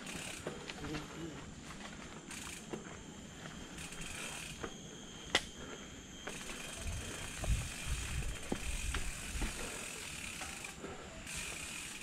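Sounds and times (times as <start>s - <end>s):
bicycle freehub buzzing: 0.0s - 12.0s
bike rattling: 0.0s - 12.0s.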